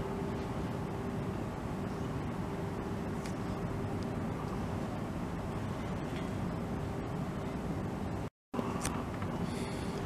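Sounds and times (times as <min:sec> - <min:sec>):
faint steady hum: 0:00.0 - 0:10.0
low outdoor rumble: 0:00.0 - 0:10.0.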